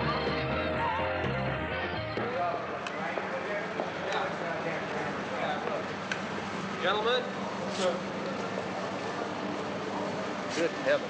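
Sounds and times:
noisy background: 0:00.0 - 0:11.0.

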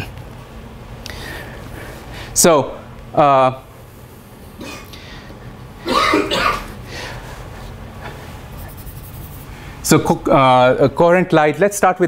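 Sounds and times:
person coughing: 0:04.6 - 0:04.9, 0:05.8 - 0:06.8.

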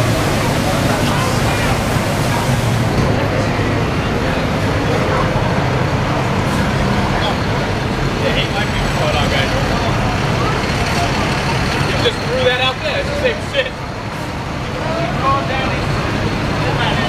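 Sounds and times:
traffic noise: 0:00.0 - 0:17.0.

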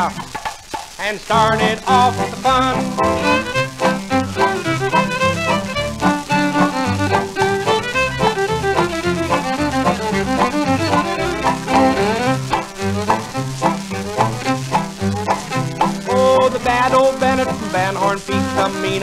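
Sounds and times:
rhythm guitar strumming: 0:00.0 - 0:19.0
fiddle melody: 0:01.3 - 0:19.0
stepping bass: 0:01.3 - 0:19.0.

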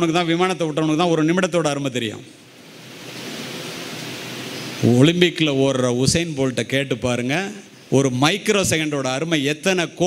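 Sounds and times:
man talking: 0:00.0 - 0:02.3, 0:04.8 - 0:10.0
steady hiss: 0:01.4 - 0:09.5.

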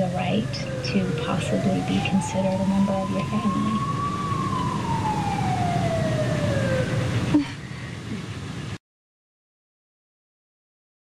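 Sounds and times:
siren winding down: 0:00.0 - 0:07.5
low rumble: 0:00.0 - 0:08.8.

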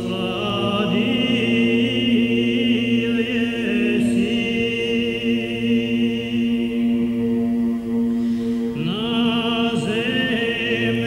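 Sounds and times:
choir holding long note: 0:00.0 - 0:11.0.

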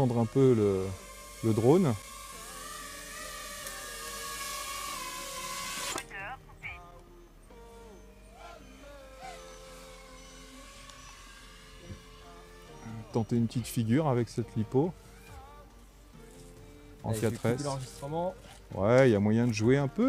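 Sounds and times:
drone motors whining: 0:00.0 - 0:20.0.

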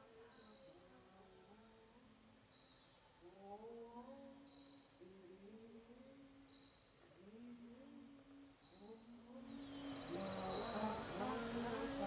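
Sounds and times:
person humming: 0:03.2 - 0:12.0.

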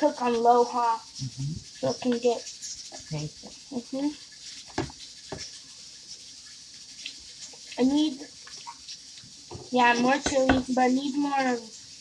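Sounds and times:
faint steady hiss: 0:00.0 - 0:12.0
spoon stirring in a pot: 0:01.7 - 0:11.5
spoon knocking against pot: 0:09.5 - 0:10.7.

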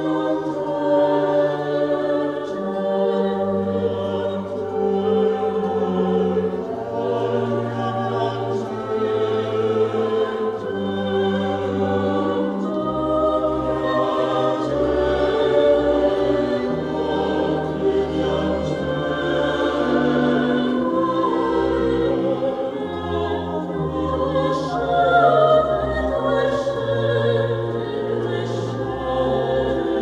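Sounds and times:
baroque ensemble: 0:00.0 - 0:30.0
mixed choir singing: 0:00.0 - 0:30.0.

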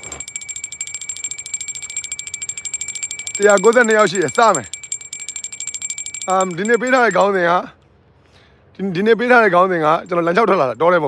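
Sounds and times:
hand bell ringing: 0:00.0 - 0:07.4.

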